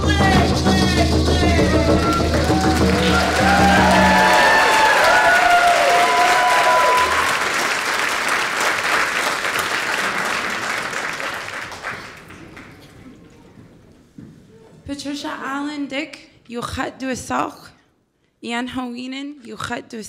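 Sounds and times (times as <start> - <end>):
hand drum: 0.0 - 4.6
audience applauding: 1.4 - 13.2.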